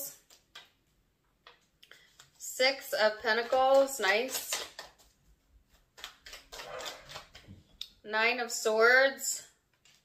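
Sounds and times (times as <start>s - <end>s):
cards being shuffled: 0.1s - 2.4s, 3.3s - 7.6s, 9.7s - 10.0s.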